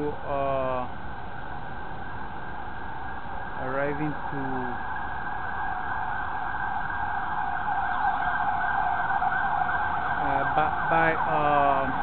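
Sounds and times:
city street noise: 0.0 - 12.0
faint siren wailing: 0.0 - 12.0.

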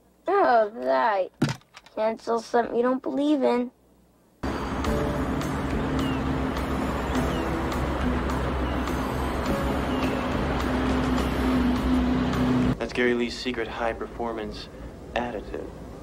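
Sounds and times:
car engines running: 4.4 - 12.8
soundtrack music: 4.4 - 12.8.

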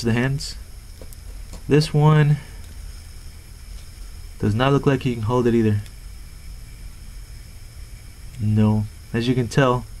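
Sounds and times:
low hum: 0.0 - 10.0
steady background hiss: 0.0 - 10.0.

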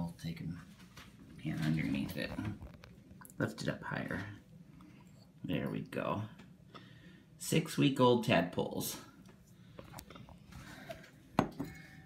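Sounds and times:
glass bowl handling noise: 11.4 - 12.0.

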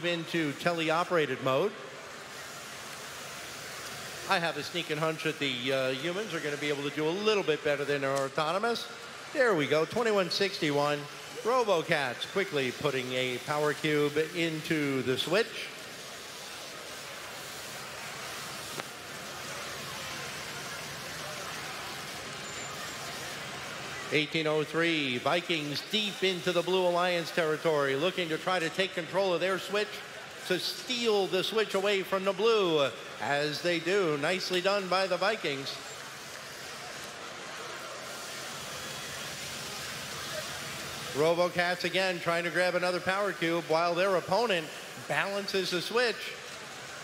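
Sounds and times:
indoor arena crowd din: 0.0 - 47.0.

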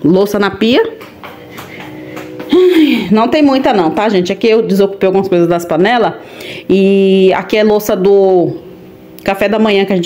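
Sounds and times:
woman talking: 0.0 - 1.1, 2.4 - 8.6, 9.2 - 10.0.

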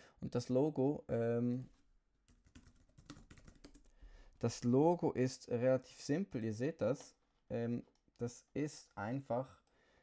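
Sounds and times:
computer keyboard typing: 2.3 - 3.9.

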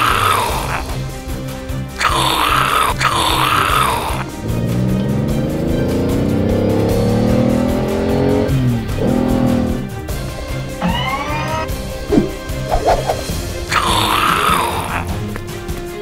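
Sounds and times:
background music with steady beat: 0.0 - 16.0
car engine sound effect: 4.2 - 9.9, 10.7 - 13.2
wavering high cry: 10.8 - 11.7.

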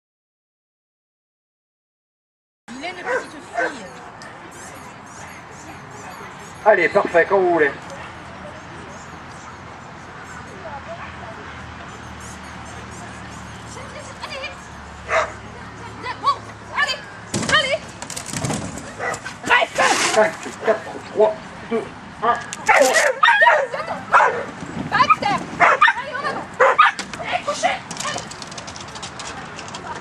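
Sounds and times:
murmur of voices: 2.7 - 18.1, 18.8 - 30.0
dog barking: 3.0 - 3.8, 15.1 - 15.4, 19.0 - 19.9, 22.2 - 24.5, 25.6 - 27.0.

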